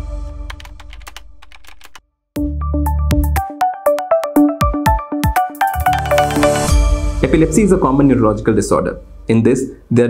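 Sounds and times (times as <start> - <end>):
held synth chord: 3.6 - 7.7.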